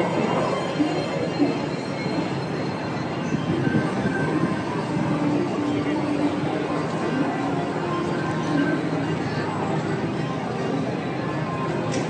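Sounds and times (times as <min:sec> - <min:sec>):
people mover cars rolling on track: 0:00.0 - 0:12.0.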